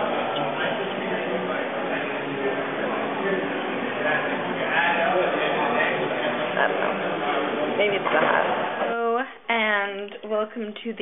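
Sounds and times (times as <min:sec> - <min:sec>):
gym room noise: 0:00.0 - 0:11.0.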